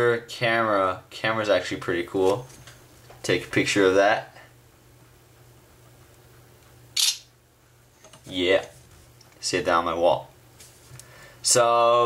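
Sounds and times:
phone camera shutter click: 7.0 - 7.3.

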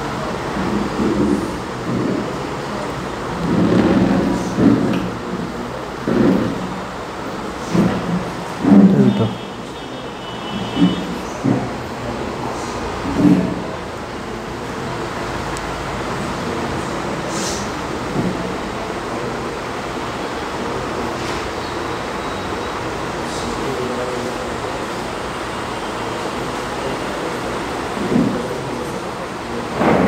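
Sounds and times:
faint indistinct voices: 0.0 - 30.0.

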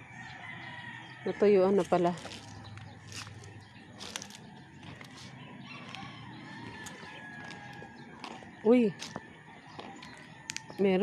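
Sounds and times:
rooster crowing: 0.0 - 1.6, 5.5 - 10.7.

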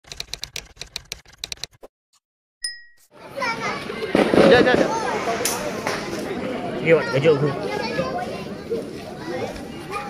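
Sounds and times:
typewriter keys clacking: 0.0 - 1.8
voices: 3.2 - 10.0.

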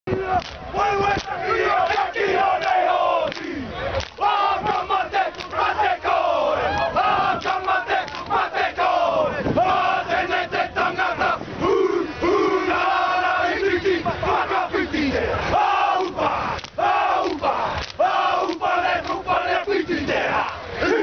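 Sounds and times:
men shouting chant in unison: 0.1 - 21.0
sharp slaps: 0.4 - 0.6, 1.2 - 5.5, 16.0 - 19.8.

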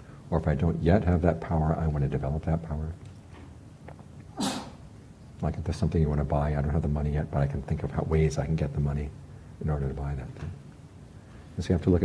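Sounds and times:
person sharp breath or sniff: 4.4 - 4.8.

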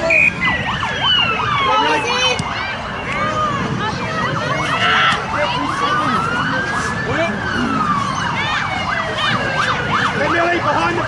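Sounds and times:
emergency siren wailing: 0.0 - 11.0
siren chirps: 0.0 - 11.0.

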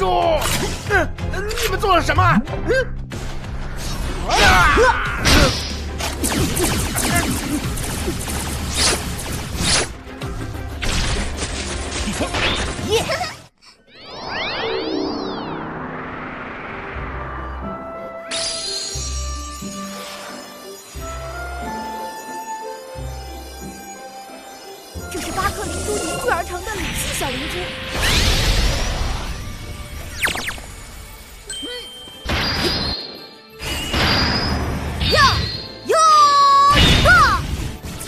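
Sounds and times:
background music: 0.0 - 13.5, 14.1 - 38.0
cartoon power-up bursts: 13.8 - 16.1
sweeping pitch glides: 13.8 - 17.8
synthesized music sting: 13.9 - 17.7.

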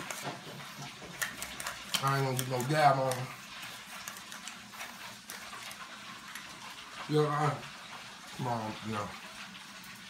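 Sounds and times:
herb grinder crunching: 0.0 - 9.4.

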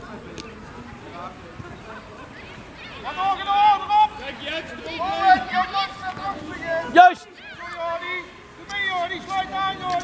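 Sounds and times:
children shouting: 2.3 - 10.0.

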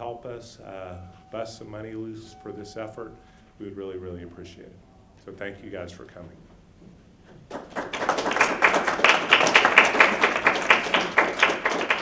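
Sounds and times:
audience applauding: 7.5 - 12.0.

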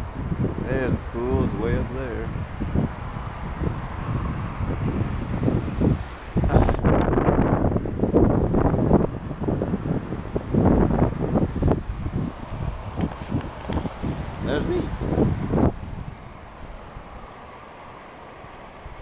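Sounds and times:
wind buffeting microphone: 0.0 - 19.0
camera handling rustle: 13.0 - 14.4.

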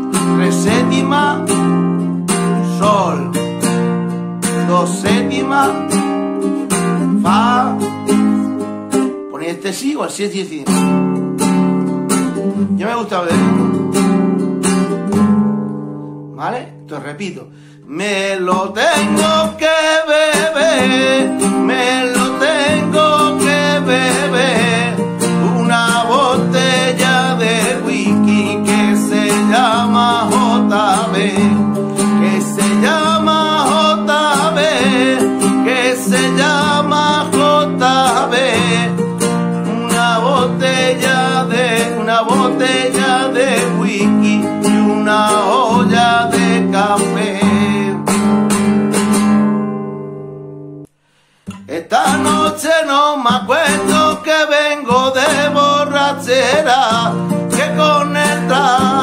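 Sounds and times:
man singing: 0.0 - 3.4, 4.4 - 8.6, 12.7 - 13.8, 16.3 - 48.3, 51.5 - 59.0
classical guitar strumming: 0.0 - 59.0.

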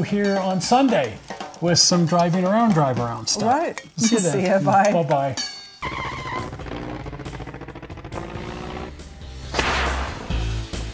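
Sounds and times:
cartoon aircraft engine buzzing: 5.8 - 9.2.

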